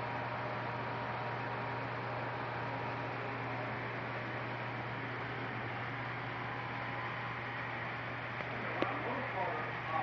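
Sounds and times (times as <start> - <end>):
model trains humming: 0.0 - 10.0.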